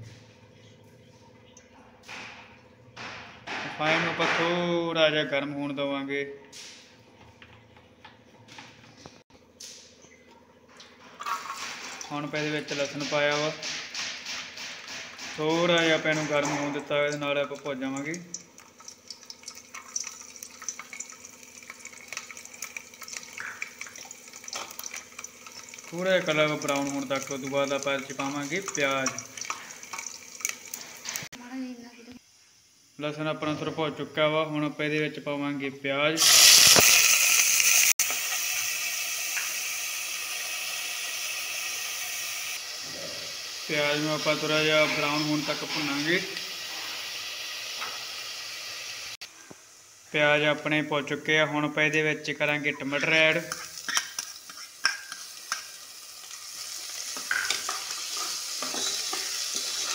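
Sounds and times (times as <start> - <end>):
garlic sizzling in oil: 16.9 - 33.0, 36.2 - 50.1, 52.6 - 59.9.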